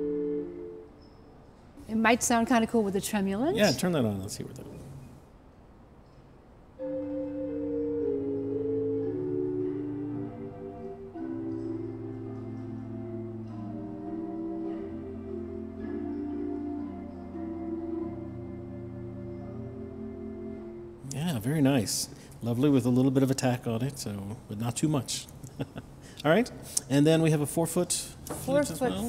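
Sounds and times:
pipe organ chords: 0.0s - 0.9s, 6.8s - 21.1s.

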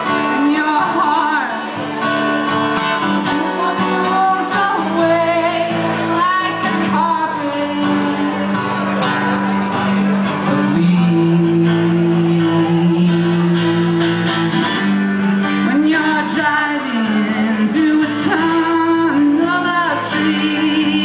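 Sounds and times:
guitar: 0.0s - 21.0s
person singing: 0.0s - 21.0s.

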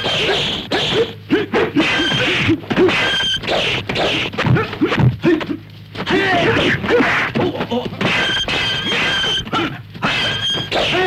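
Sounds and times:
fighters shouting: 0.0s - 11.0s.

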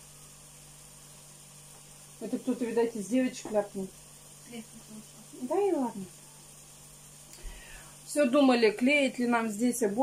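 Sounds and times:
faint steady hiss: 0.0s - 10.0s
low even hum: 0.0s - 10.0s.

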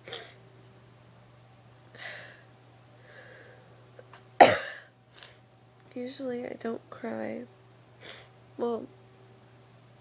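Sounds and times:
soft breath: 2.0s - 3.8s
woman coughing: 4.4s - 4.9s.

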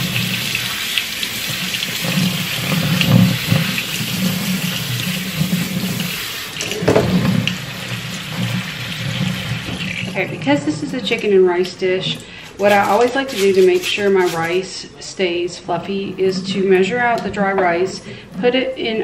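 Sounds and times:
water stream into sink: 0.0s - 14.6s.

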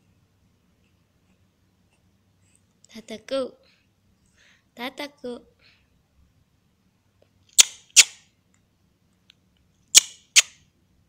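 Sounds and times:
sharp loud clicks: 10.0s - 10.6s.

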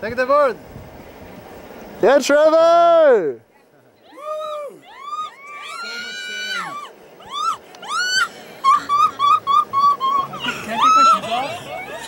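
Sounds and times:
people whooping and cheering: 4.0s - 12.0s
hoots of laughter: 7.5s - 12.0s.

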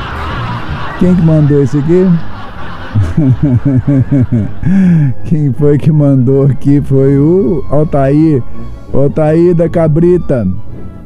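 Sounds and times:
man laughing: 0.0s - 5.2s.

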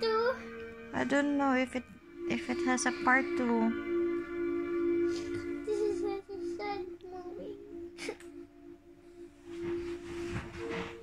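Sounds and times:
held musical note: 0.0s - 11.0s.

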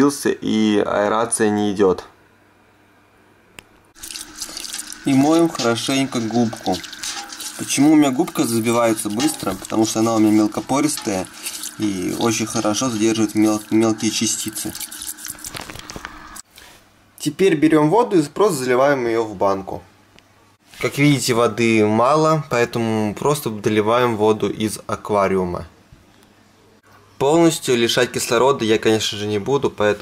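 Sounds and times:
sponge squeezed in water: 4.0s - 16.1s
water running and splashing: 4.0s - 16.4s.

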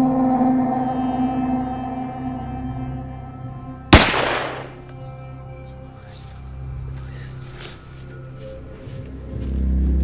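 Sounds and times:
background music: 0.0s - 10.0s
rifle shot with echo: 4.0s - 4.8s.

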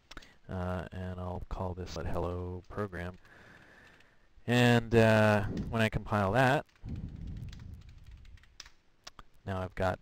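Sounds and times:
typing on computer keyboard: 2.7s - 4.2s, 5.4s - 9.2s.

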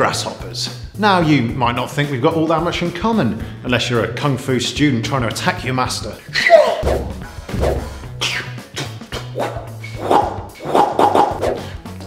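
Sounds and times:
music with low bass and percussion: 5.2s - 12.0s
voice-like cries: 6.4s - 6.8s.

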